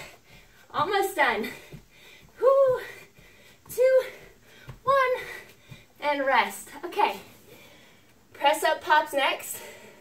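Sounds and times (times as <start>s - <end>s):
feet thudding on carpet: 0.0s - 6.5s
woman counting down: 0.0s - 7.3s, 8.3s - 9.7s.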